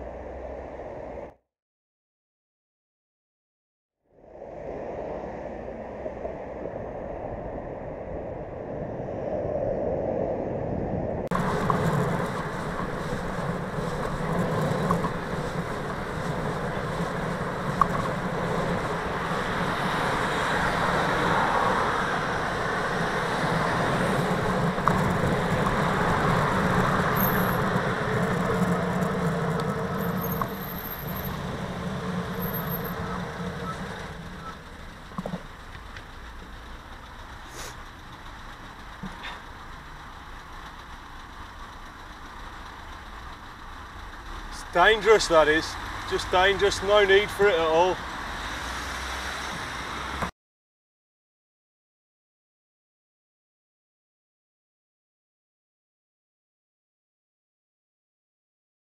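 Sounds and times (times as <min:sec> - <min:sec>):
road traffic noise: 0:00.0 - 0:01.4, 0:04.2 - 0:07.4, 0:11.3 - 0:50.3
wind on microphone: 0:04.2 - 0:30.6.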